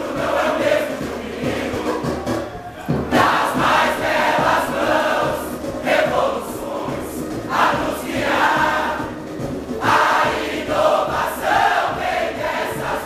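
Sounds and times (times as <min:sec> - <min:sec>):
large chorus singing samba: 0:00.0 - 0:13.0.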